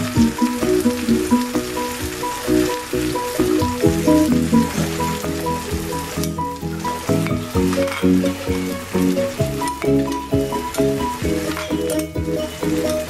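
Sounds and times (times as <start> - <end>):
food frying in a wok: 0.0 - 13.0
instrumental background music: 0.0 - 13.0.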